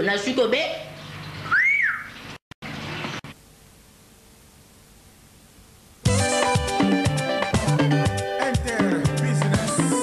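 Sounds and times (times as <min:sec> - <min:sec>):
rising and falling whistle: 0:01.5 - 0:02.1
tape hiss with low hum: 0:02.3 - 0:10.0.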